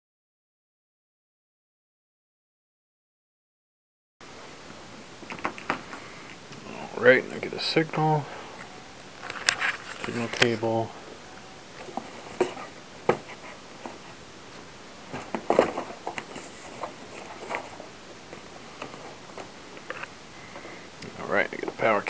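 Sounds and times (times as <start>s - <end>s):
hands rustling: 4.7s - 21.9s.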